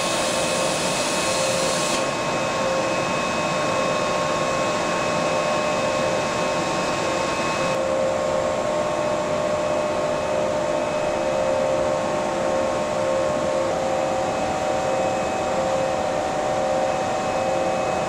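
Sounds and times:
machine hum tones: 0.0 - 18.0.

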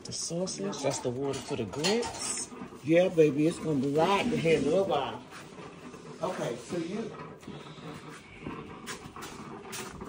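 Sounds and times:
coffee maker hissing and gurgling: 0.0 - 10.0.

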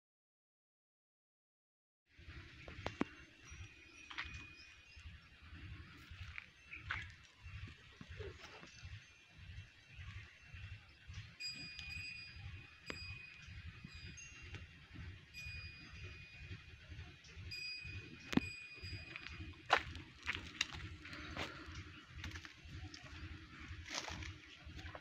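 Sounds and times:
small bell ringing faintly: 2.3 - 25.0.

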